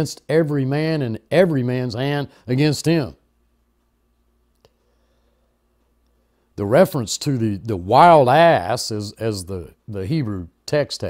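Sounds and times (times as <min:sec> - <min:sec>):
person speaking: 0:00.0 - 0:03.3, 0:06.6 - 0:11.0
faint steady hum: 0:00.0 - 0:11.0.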